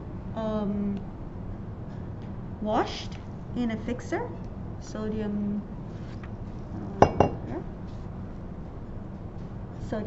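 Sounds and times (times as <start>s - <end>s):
glassware clinking: 7.0s - 7.5s.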